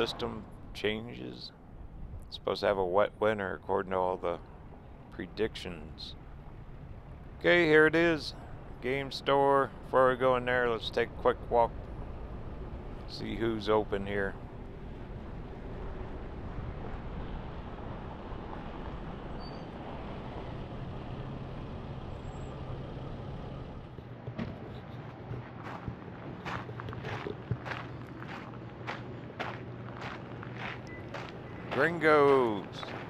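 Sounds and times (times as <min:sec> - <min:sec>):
steady low rumble: 0:00.0 - 0:33.0
footsteps crunching on gravel: 0:24.4 - 0:33.0.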